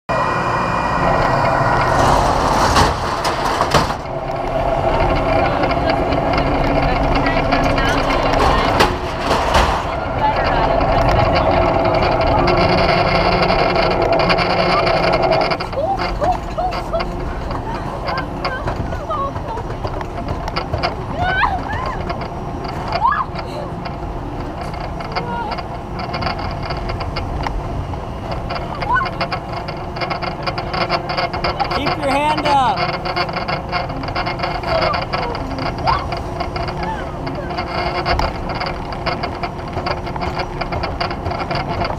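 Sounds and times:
steady machinery hum: 0.1s - 41.9s.

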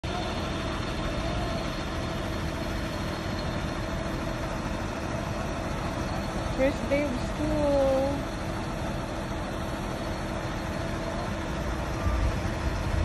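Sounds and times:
bus engine driving past: 0.1s - 13.0s.

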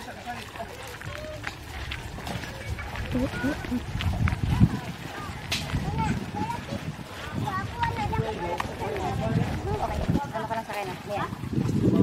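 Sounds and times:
wind rumbling on microphone: 0.4s - 12.0s.

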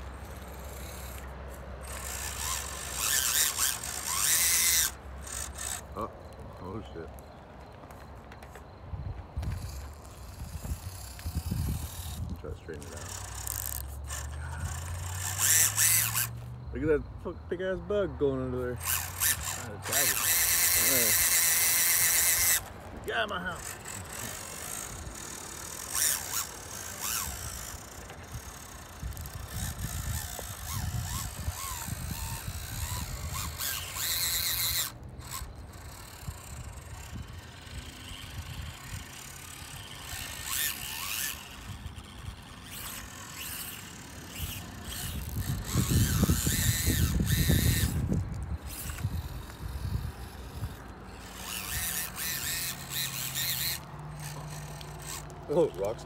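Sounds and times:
small electric motors whining: 0.0s - 56.0s
tyres scrabbling on loose dirt: 0.0s - 56.0s.

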